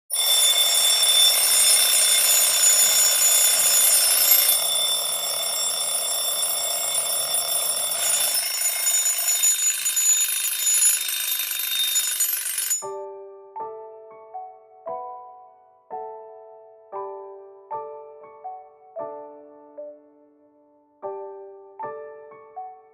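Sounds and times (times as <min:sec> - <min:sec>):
high-pitched alarm ringing: 0:00.1 - 0:13.0.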